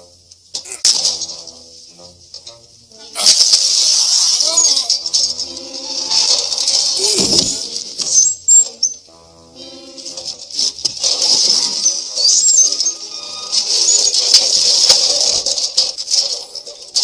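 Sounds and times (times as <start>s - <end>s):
quiet background music: 0.0s - 17.0s
man crying out: 7.0s - 7.6s.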